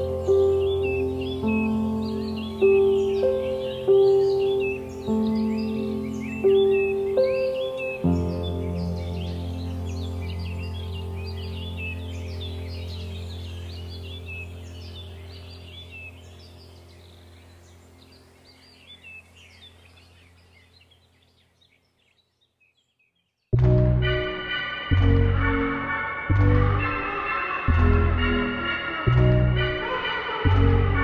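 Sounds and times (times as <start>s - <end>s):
ambient music chord: 0.0s - 19.4s, 23.6s - 31.0s
birdsong chirping: 0.0s - 31.0s
deep bass drone: 8.1s - 17.9s, 23.6s - 31.0s.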